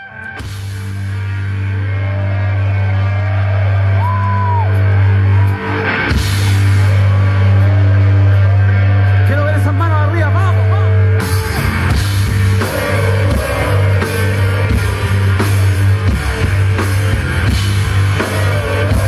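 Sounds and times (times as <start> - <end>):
low bass drone: 0.0 - 19.0
sliding guitar tones: 10.3 - 19.0.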